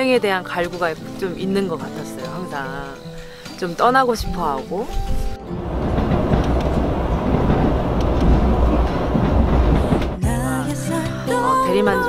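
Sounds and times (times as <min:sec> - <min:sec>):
train rumbling on rails: 0:04.8 - 0:10.6
faint track clicks: 0:05.6 - 0:10.2.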